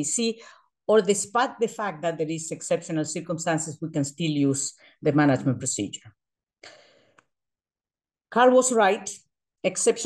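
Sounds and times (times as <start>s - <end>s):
breath into microphone: 0.4s - 0.7s, 6.6s - 7.3s.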